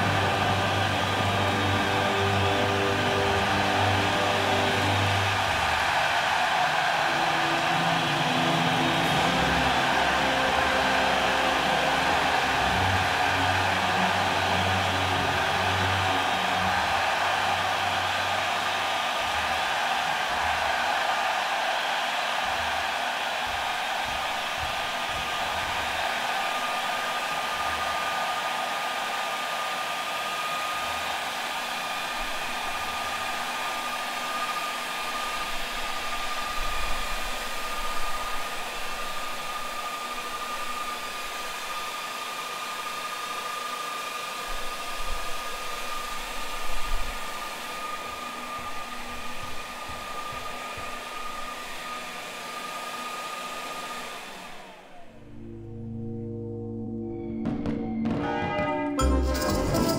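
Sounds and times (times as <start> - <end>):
leaf blowers rushing air: 0.0 - 55.5.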